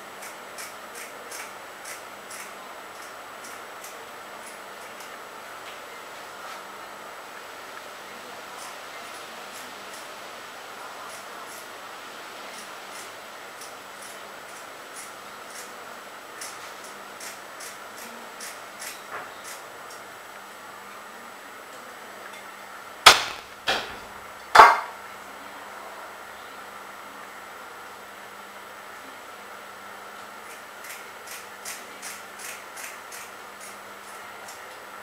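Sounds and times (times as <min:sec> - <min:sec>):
sharp knocks: 0:23.1 - 0:24.0.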